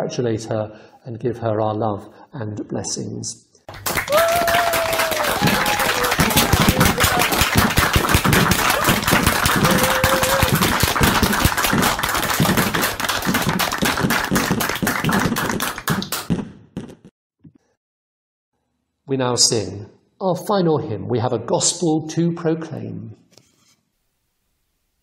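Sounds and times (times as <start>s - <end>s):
fireworks crackling bangs: 5.4s - 17.0s.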